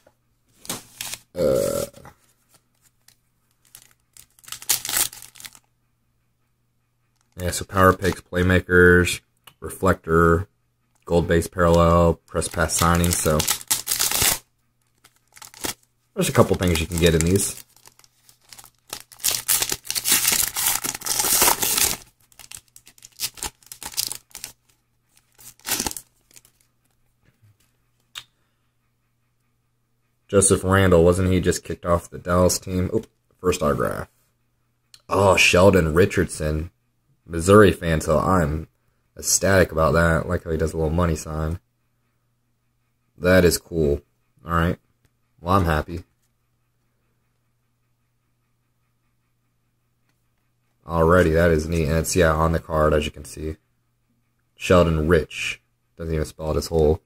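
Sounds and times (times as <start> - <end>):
foil wrappers crinkling: 0.6 - 1.9, 3.6 - 5.6, 11.6 - 26.6.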